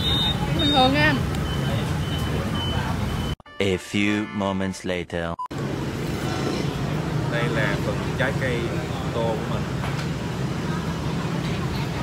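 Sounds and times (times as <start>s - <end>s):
low rumble of street traffic: 0.0s - 3.4s, 5.5s - 12.0s.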